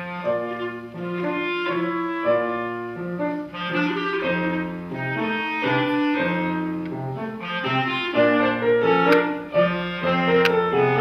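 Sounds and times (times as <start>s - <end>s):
clarinet playing tango melody: 0.0s - 11.0s
piano accompaniment: 0.0s - 11.0s.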